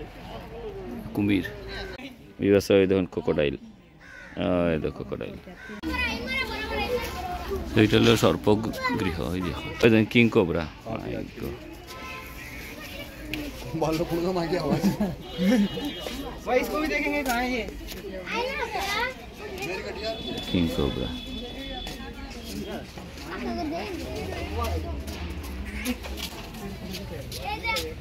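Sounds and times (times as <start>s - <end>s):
children chattering and calling: 0.0s - 28.0s
crowd talking: 0.0s - 28.0s
man speaking: 7.7s - 11.6s, 20.4s - 21.3s.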